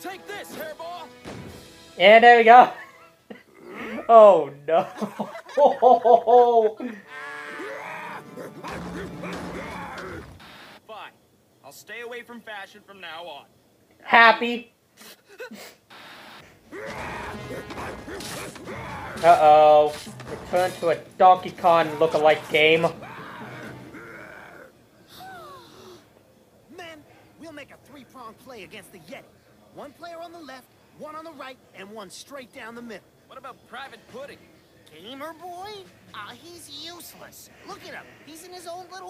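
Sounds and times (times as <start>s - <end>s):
cartoon soundtrack music: 7.1s - 10.4s, 16.8s - 21.0s, 21.6s - 24.0s.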